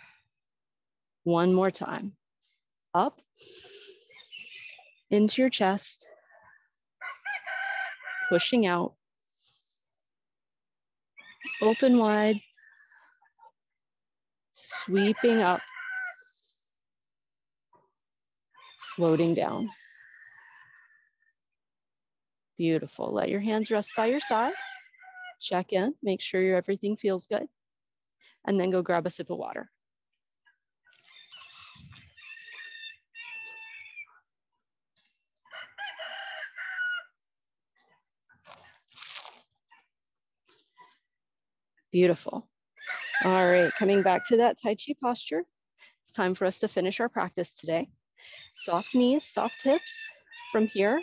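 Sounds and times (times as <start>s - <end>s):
rooster crowing: 7.0s - 8.4s, 15.0s - 16.2s, 31.4s - 34.0s, 35.5s - 37.1s, 42.8s - 44.3s
brief rustle: 38.4s - 39.5s.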